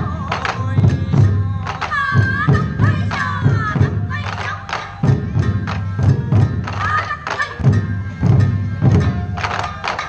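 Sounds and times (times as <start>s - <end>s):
taiko drums beating: 0.0s - 10.0s.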